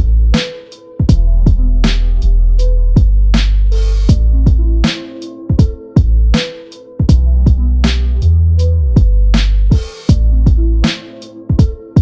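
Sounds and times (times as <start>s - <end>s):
deep heavy bass: 0.0s - 0.4s, 1.1s - 4.9s, 6.0s - 6.4s, 7.1s - 10.9s
hard-hitting drums: 0.0s - 2.3s, 3.0s - 8.3s, 9.0s - 12.0s.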